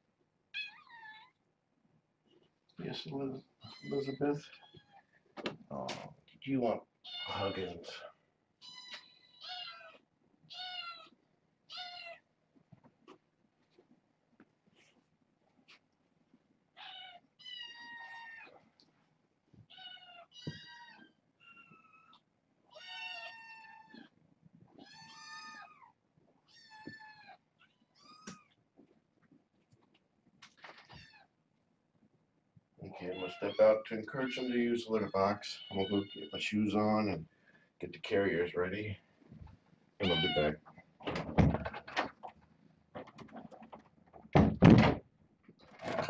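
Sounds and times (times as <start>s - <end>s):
kittens meowing: 3.6s - 5.0s, 7.0s - 8.0s, 8.6s - 12.2s, 19.6s - 24.1s, 24.7s - 28.6s, 32.9s - 36.4s, 40.0s - 40.6s.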